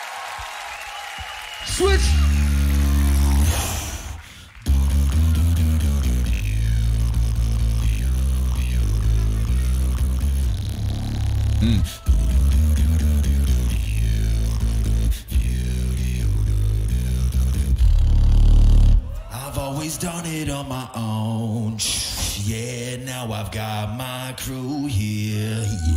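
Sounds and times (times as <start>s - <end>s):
beatboxing into a microphone: 1.6s - 25.9s.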